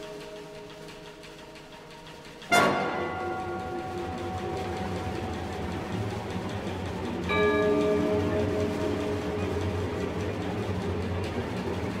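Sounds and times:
orchestra playing sustained chords: 0.0 - 12.0.

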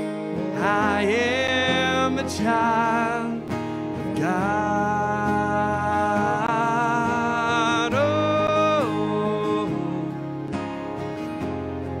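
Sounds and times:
strummed acoustic guitar: 0.0 - 12.0
person singing: 0.4 - 10.5.

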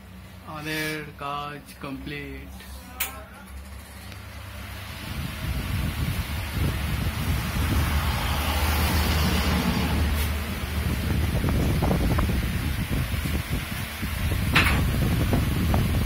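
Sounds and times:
wind noise on microphone: 4.8 - 16.0.

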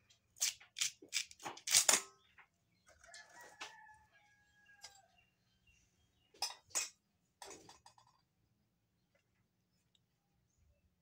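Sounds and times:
rooster crowing faintly: 2.9 - 5.2.

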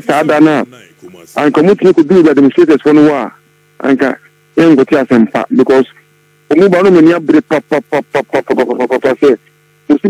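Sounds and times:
person talking quickly: 0.0 - 9.4
steady electrical hum: 0.0 - 10.0.

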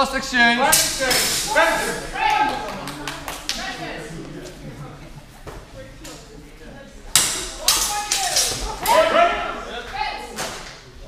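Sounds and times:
loud shouting: 0.6 - 2.9, 7.6 - 10.3
swords clacking: 7.1 - 9.0.

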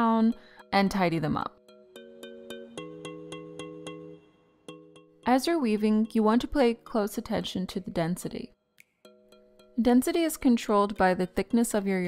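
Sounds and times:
held chord notes: 0.0 - 6.4, 8.8 - 10.2.

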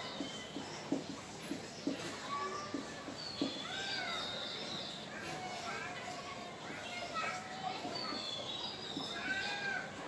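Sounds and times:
children playing: 0.0 - 10.0.

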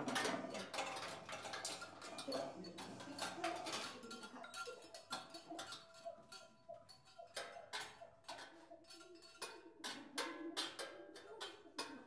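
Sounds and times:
clicks and knocks inside metal bowl: 0.0 - 12.0.

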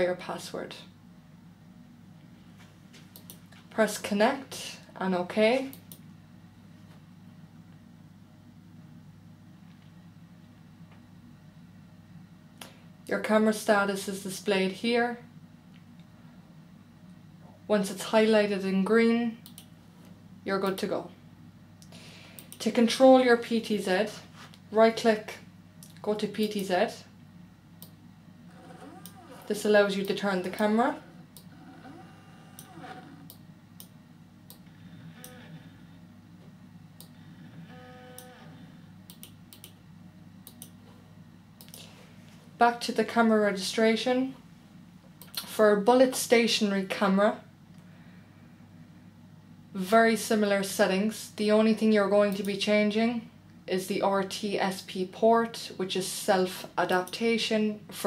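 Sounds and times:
faint low hum: 0.0 - 58.0
computer mouse click: 19.4 - 19.7, 39.1 - 39.8, 40.4 - 40.8.

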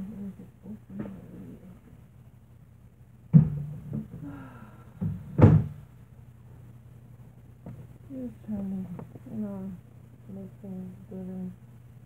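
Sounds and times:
low steady hum: 0.0 - 12.0
loud knocks: 3.3 - 4.2, 5.0 - 5.8.

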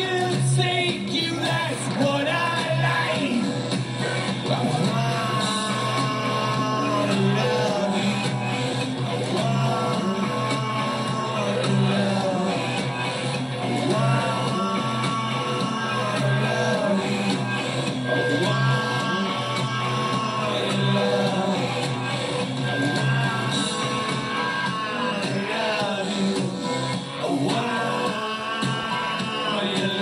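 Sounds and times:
bass guitar: 0.0 - 30.0
drums: 0.0 - 30.0
electric guitar: 0.0 - 30.0
man singing lead vocals: 0.0 - 30.0.

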